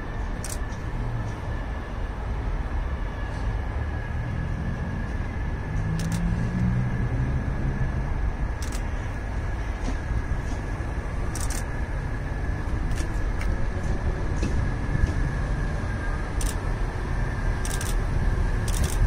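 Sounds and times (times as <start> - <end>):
train engine rumble: 0.0 - 19.0.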